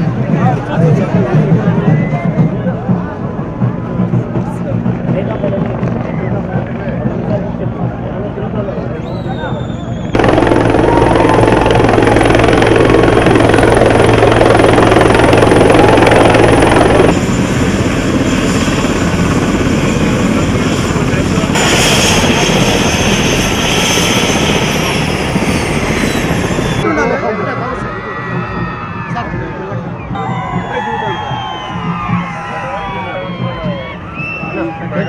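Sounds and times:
helicopter rotor thrumming: 0.0s - 9.0s, 9.6s - 27.7s
high turbine whine: 10.0s - 35.0s.

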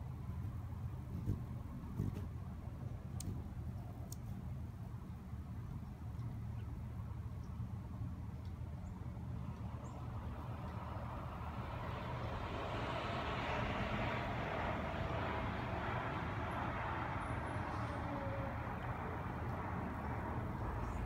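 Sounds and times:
distant traffic rumble: 0.0s - 21.0s
vehicle passing: 10.1s - 21.0s.

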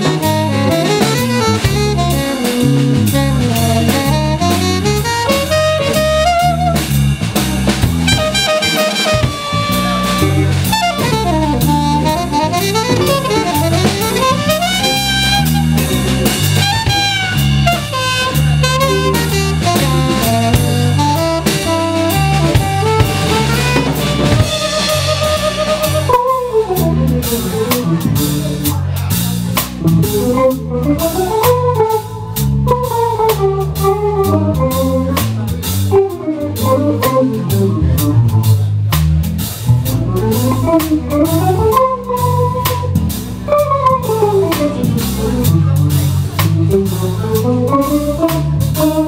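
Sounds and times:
electric guitar solo: 0.0s - 7.0s, 7.9s - 28.3s, 35.9s - 38.4s, 40.0s - 49.0s
saxophone line: 0.0s - 28.7s, 29.8s - 38.3s, 39.8s - 49.0s
drum kit: 0.0s - 49.0s
electric bass: 0.0s - 49.0s.

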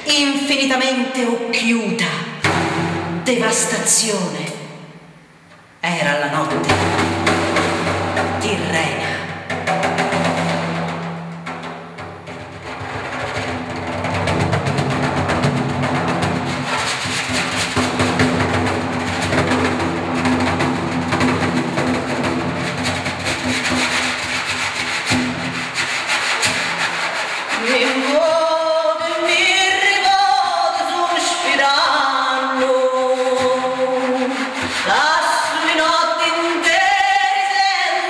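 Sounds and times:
hand rubbing frame drum skin: 9.4s - 28.8s, 32.6s - 35.8s.

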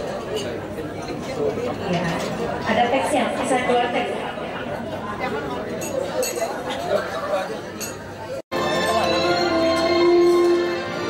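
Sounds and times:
chatter of many guests: 0.0s - 11.0s
glassware clinking: 5.8s - 6.9s, 7.8s - 8.1s
music with held notes: 8.5s - 11.0s.

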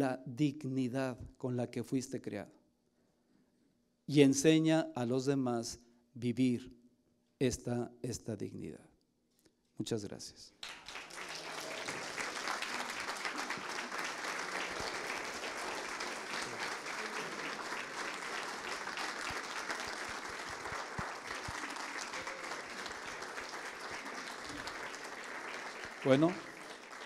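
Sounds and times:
audience applauding: 10.6s - 27.0s.

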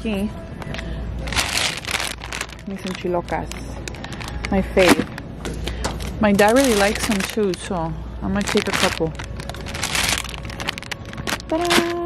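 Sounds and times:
plastic bags rustling and crackling: 0.7s - 12.0s.

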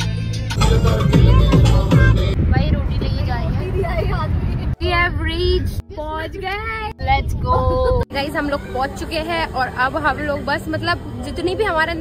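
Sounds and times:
people singing: 0.6s - 2.4s.

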